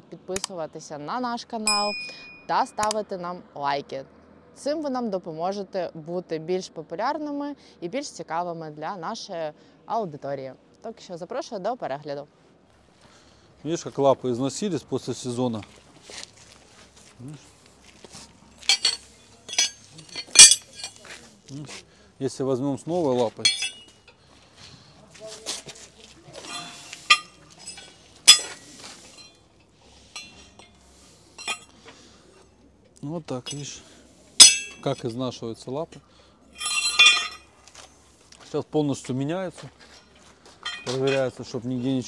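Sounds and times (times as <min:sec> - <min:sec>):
steel pieces clinking: 0:18.6 - 0:21.1, 0:23.3 - 0:24.2, 0:26.3 - 0:31.8, 0:33.4 - 0:33.8, 0:34.4 - 0:35.1, 0:36.6 - 0:37.8, 0:40.0 - 0:41.4.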